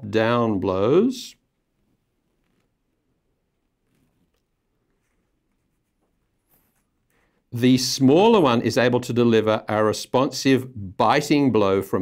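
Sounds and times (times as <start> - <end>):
paper rustling: 3.8 - 7.2.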